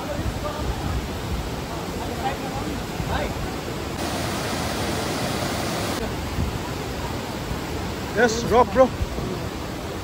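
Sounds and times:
river rushing over boulders: 0.0s - 10.0s.

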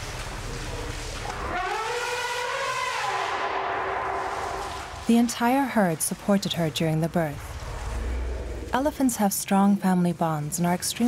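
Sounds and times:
elephant trumpeting: 1.3s - 5.0s.

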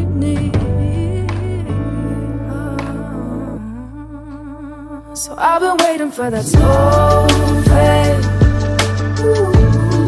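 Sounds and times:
soft sustained bass: 6.6s - 10.0s.

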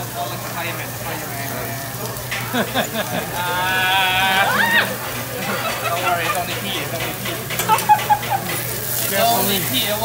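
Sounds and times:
food sizzling on a griddle: 0.0s - 10.0s.

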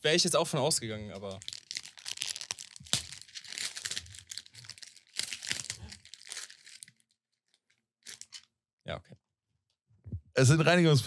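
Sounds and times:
paper tearing and crinkling: 1.4s - 7.0s, 8.1s - 8.4s.

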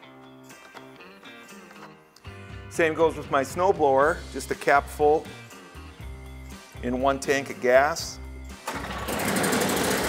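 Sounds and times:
snowblower engine starting and running: 8.6s - 10.0s.

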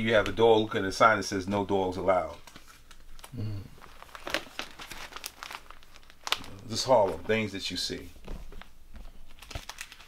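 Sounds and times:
photo prints rustling and crinkling: 0.0s - 10.0s.

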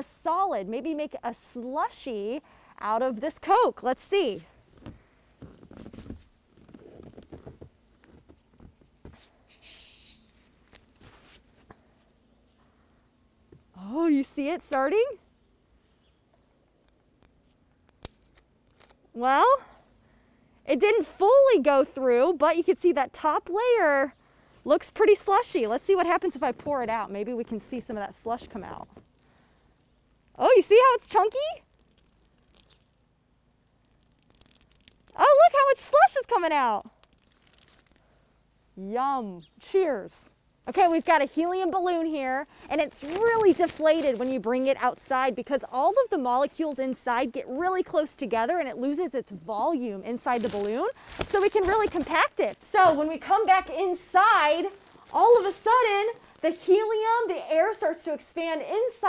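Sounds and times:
gas hissing from bottle: 9.5s - 10.3s
plastic bottle cap twisting: 31.6s - 33.1s, 33.7s - 35.2s, 37.0s - 38.0s, 54.6s - 56.4s.

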